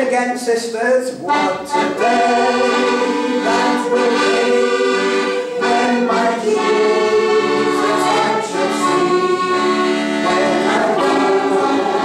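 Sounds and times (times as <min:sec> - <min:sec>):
accordion playing sustained chords: 0:01.1 - 0:12.0
group singing in held notes: 0:01.3 - 0:12.0.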